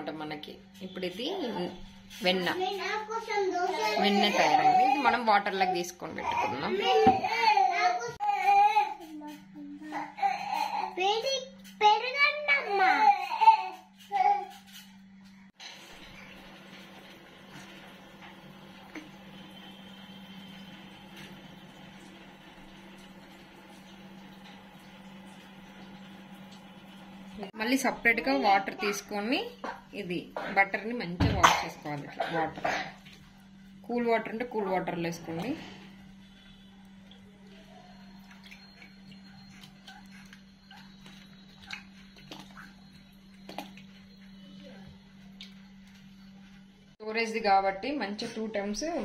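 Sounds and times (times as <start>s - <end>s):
wet squelching and sloshing: 31.8s - 33.9s, 35.3s - 46.6s
small sharp splashes: 40.7s - 44.0s.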